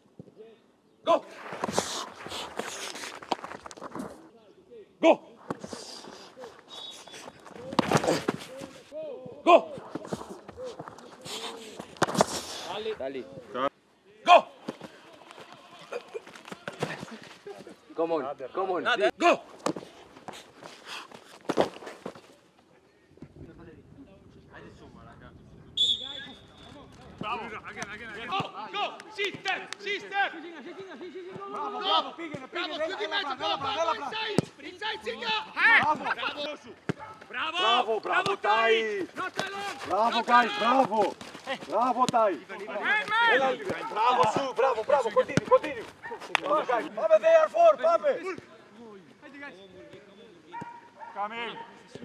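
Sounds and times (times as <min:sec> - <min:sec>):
whistle blast: 0:25.8 - 0:26.8
football being kicked: 0:42.0 - 0:45.9.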